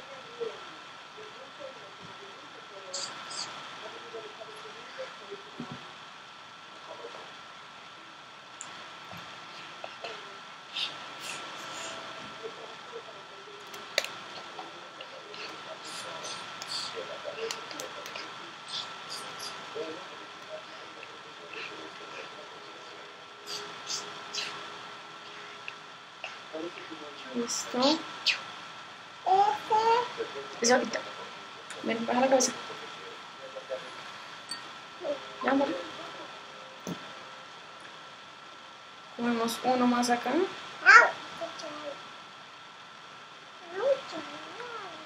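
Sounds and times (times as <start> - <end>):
faint high whine: 0.0 - 45.0.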